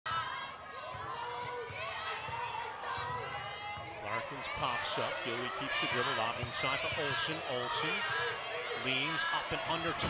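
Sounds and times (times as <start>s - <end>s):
voices in a gym: 0.1s - 10.0s.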